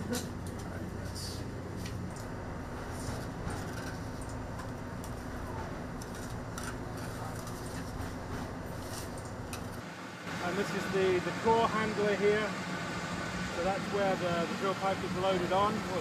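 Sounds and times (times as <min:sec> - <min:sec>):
low machinery hum: 0:00.0 - 0:16.0.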